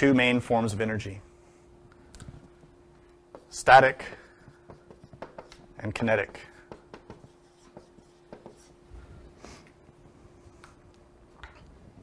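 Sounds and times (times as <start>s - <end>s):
pen writing on board: 3.3s - 8.7s.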